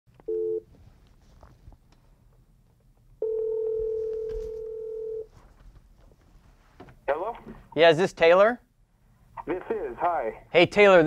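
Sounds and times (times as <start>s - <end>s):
telephone ringback tone: 0.3s - 0.6s, 3.2s - 5.3s.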